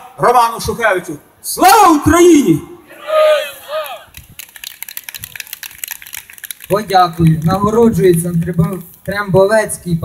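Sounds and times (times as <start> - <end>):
sparse applause: 2.9 - 7.1.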